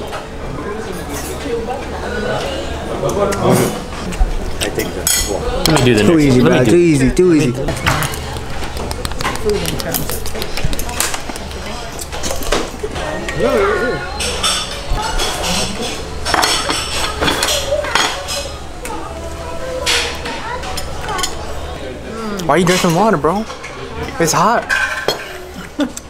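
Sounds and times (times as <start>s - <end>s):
background chatter: 0.0s - 26.0s
forks and plates clinking: 4.6s - 6.5s, 7.3s - 18.6s, 22.6s - 25.5s.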